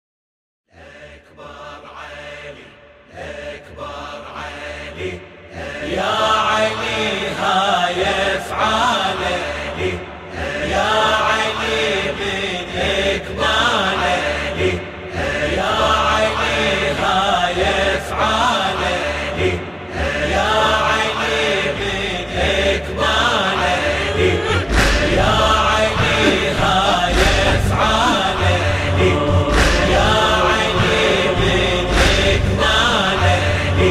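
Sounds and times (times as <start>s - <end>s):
layered chanting voices: 0.7s - 33.9s
deep bass pulse: 24.7s - 32.7s.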